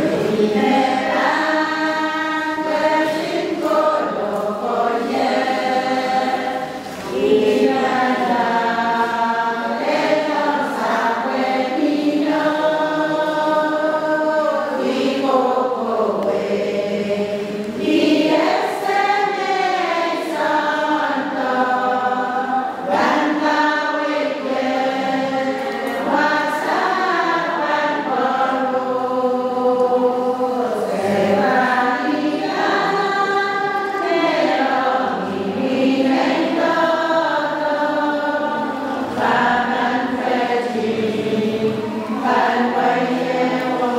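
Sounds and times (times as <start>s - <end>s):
women singing a hymn: 0.0s - 43.9s.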